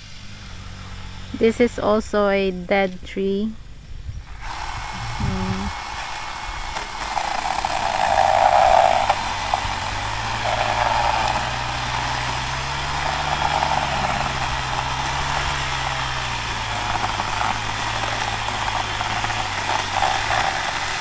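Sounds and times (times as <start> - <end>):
two-stroke power tool engine running: 4.3 - 21.0.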